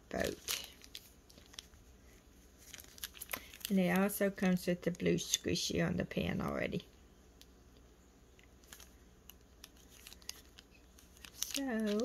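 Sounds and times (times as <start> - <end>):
plastic bag crinkling: 0.1 - 5.3, 8.6 - 12.0.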